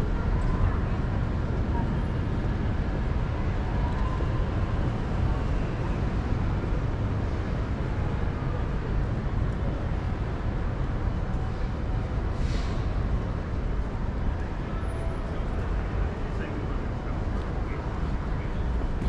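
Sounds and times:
faint voices of passers-by: 0.0s - 19.0s
road traffic rumble: 0.0s - 19.0s.

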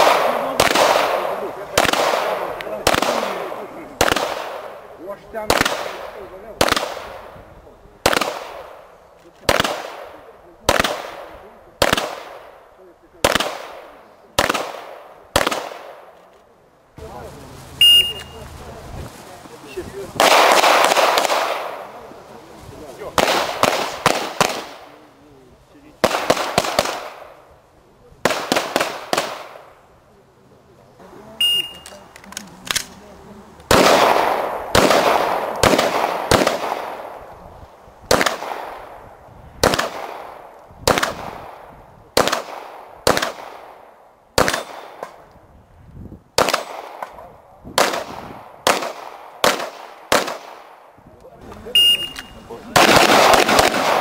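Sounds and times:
pistol shots with echo: 0.0s - 7.4s, 8.0s - 16.2s, 20.2s - 22.0s, 23.1s - 25.0s, 26.0s - 27.5s, 28.2s - 29.8s, 33.7s - 37.3s, 38.1s - 45.2s, 46.4s - 50.9s, 51.8s - 54.0s
shot timer beep: 17.8s - 18.4s, 31.4s - 31.9s, 51.8s - 52.4s.

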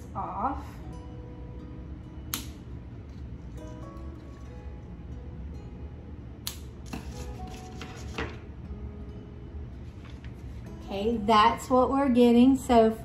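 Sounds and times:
soft background music: 0.0s - 13.0s
scissors snipping twine: 2.3s - 2.6s, 6.4s - 7.3s.

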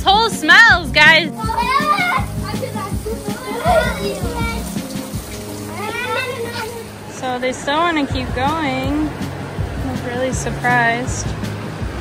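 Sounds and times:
background music: 0.0s - 12.0s
children calling and squealing: 0.0s - 12.0s.

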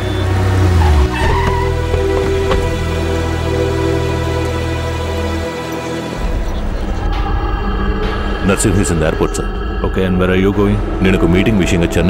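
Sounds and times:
car pulling up and braking: 0.0s - 7.4s
background film music: 0.0s - 12.0s.

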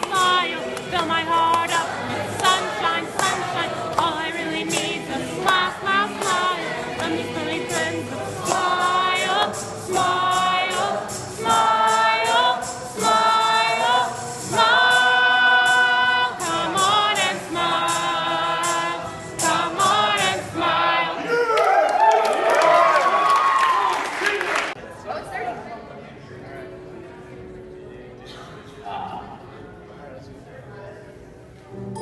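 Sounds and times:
song over speakers with beat: 0.0s - 20.6s.

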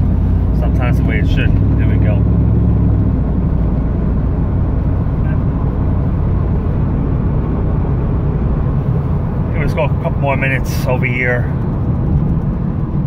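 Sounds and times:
car engine drone: 0.0s - 13.0s
road and tyre noise: 0.0s - 13.0s.

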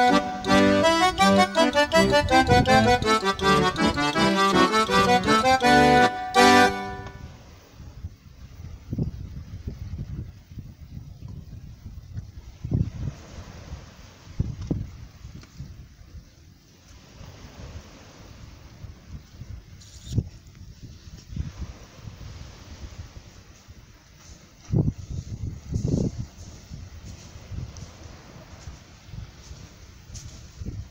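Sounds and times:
wind buffeting microphone: 0.0s - 5.9s, 7.1s - 30.9s
calm sea on shingle: 0.0s - 30.9s.

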